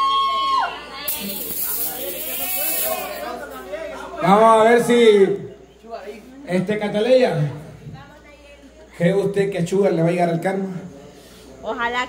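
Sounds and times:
people talking: 0:00.8 - 0:06.7.

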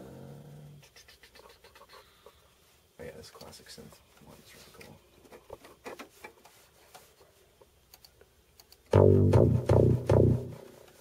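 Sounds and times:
computer mouse clicking: 0:07.9 - 0:08.9.

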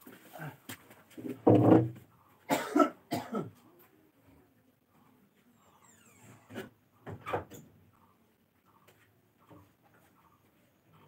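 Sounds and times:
person coughing: 0:02.5 - 0:03.6.

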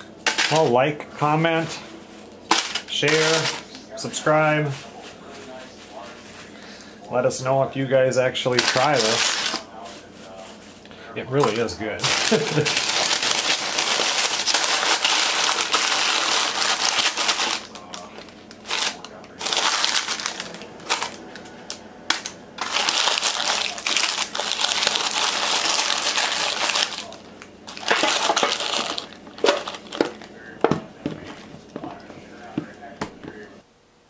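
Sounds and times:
stiff paper crinkling: 0:01.8 - 0:07.2, 0:08.4 - 0:33.5
person laughing: 0:12.0 - 0:13.1.

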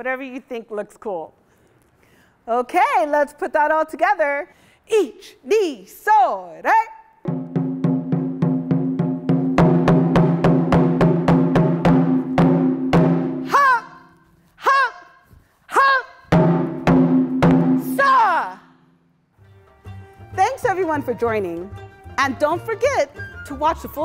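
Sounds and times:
taiko drums: 0:07.3 - 0:13.6, 0:16.3 - 0:18.2
person shouting: 0:13.4 - 0:16.3, 0:17.8 - 0:18.7.

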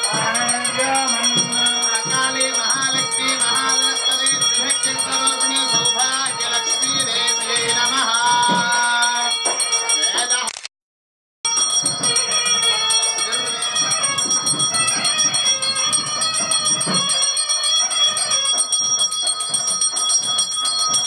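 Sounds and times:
temple bells ringing: 0:00.0 - 0:10.5, 0:11.5 - 0:21.0.

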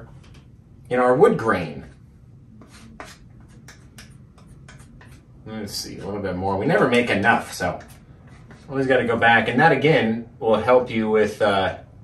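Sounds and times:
palette knife scraping paint: 0:01.8 - 0:06.2, 0:06.8 - 0:09.0.

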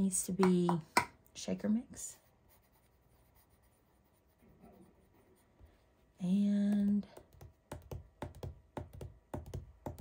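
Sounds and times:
pencil scratching on paper: 0:02.2 - 0:06.0.

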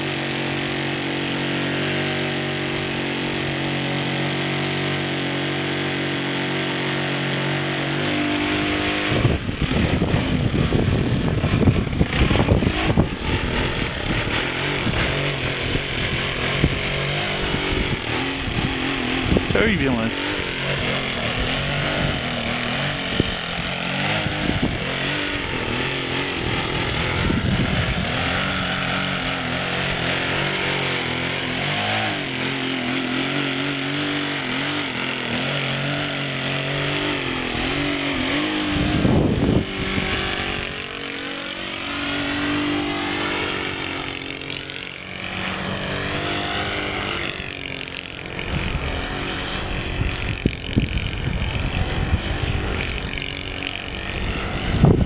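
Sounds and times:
model plane engine: 0:00.0 - 0:55.0
wind rumbling on microphone: 0:08.7 - 0:30.1, 0:37.2 - 0:40.9, 0:48.1 - 0:55.0.

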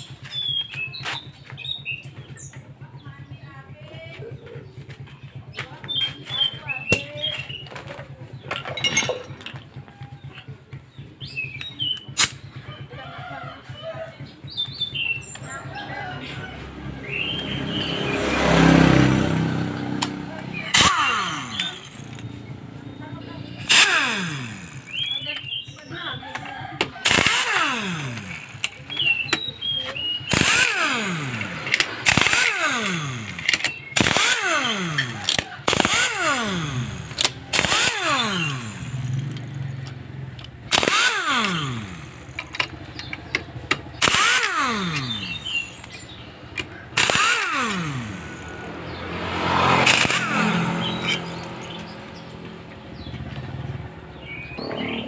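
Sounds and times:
power wrench whining: 0:05.9 - 0:10.5, 0:11.3 - 0:13.0, 0:19.8 - 0:53.9.

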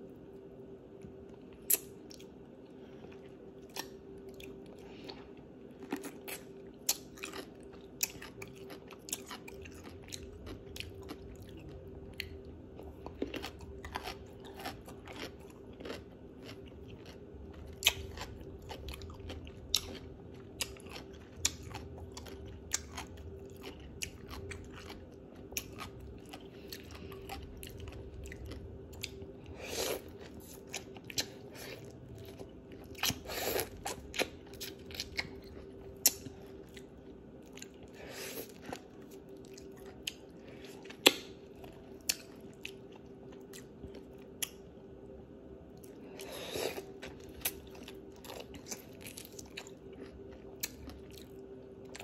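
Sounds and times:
faint hum: 0:00.0 - 0:52.0
crunching and chewing pickle: 0:01.0 - 0:52.0.

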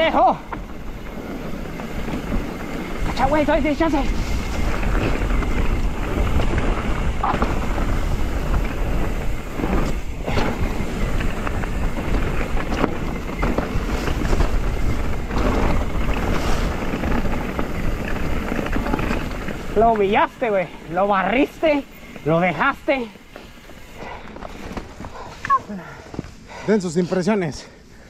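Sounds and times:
bike knocks and rattles: 0:00.0 - 0:20.5
wind buffeting microphone: 0:00.0 - 0:25.3
bike tyres on dirt and leaves: 0:00.0 - 0:28.0.

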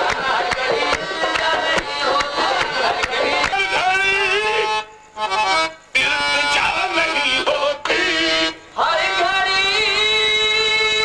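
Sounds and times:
harmonium: 0:00.0 - 0:11.0
man singing drawn-out notes: 0:03.4 - 0:11.0.

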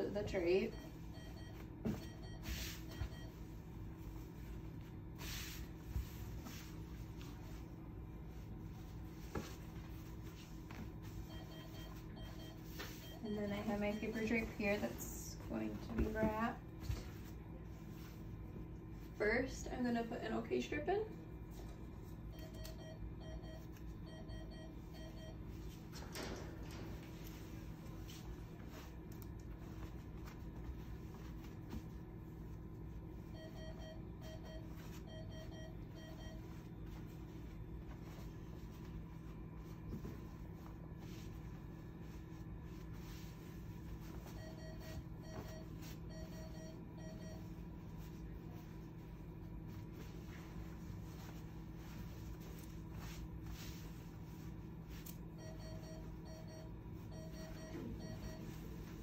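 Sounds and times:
low room hum: 0:00.0 - 0:59.0
cloth rustling: 0:47.5 - 0:55.1.

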